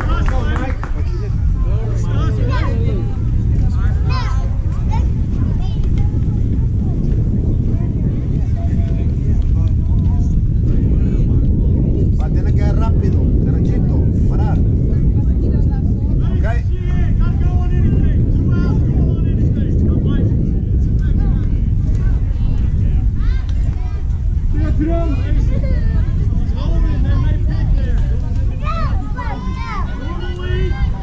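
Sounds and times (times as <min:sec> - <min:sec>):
steady loud low rumble: 0:00.0 - 0:31.0
players and spectators calling out: 0:28.5 - 0:31.0.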